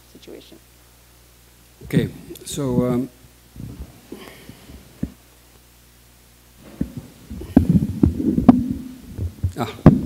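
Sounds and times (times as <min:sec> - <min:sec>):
microphone handling thumps: 0:01.8 - 0:05.2, 0:06.6 - 0:10.0.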